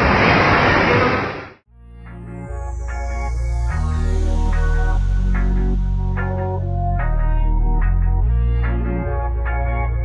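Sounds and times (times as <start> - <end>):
water spraying and falling: 0.0 - 1.6
electronic music with deep bass: 2.1 - 10.0.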